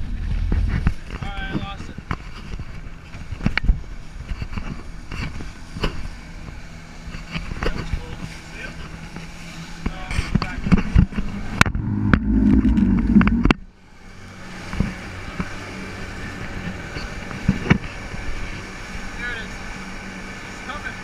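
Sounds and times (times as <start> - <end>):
outboard motors: 0.0 - 21.0
wind on microphone: 11.4 - 13.7.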